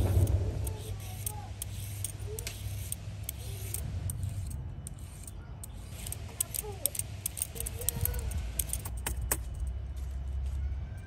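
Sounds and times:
peeler scraping carrot: 0.0 - 9.0.

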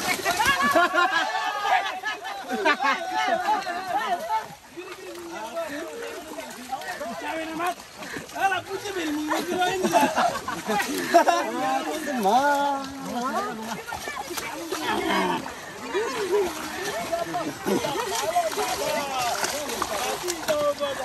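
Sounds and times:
people talking and calling out: 0.0 - 21.0.

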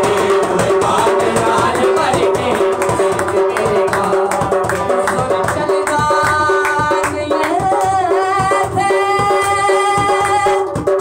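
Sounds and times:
man singing: 0.0 - 10.5.

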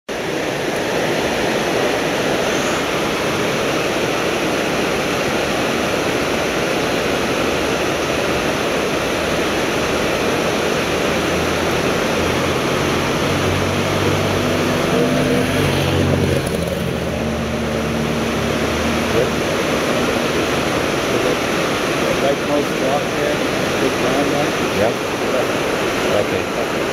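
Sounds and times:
river rapids rushing over rocks: 0.1 - 26.9.

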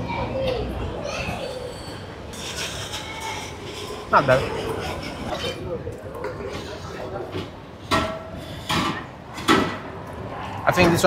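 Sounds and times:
faint chatter of passers-by: 0.0 - 11.0.

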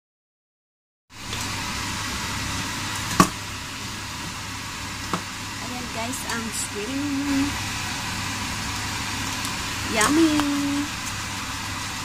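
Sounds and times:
food sizzling in a wok: 1.1 - 12.0.

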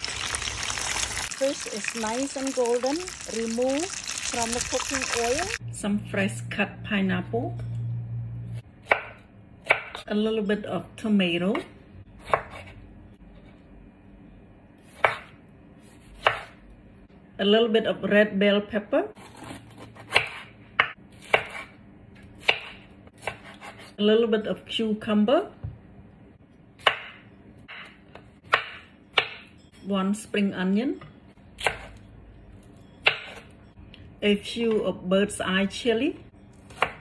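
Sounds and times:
knife cutting tomato: 22.4 - 24.0.

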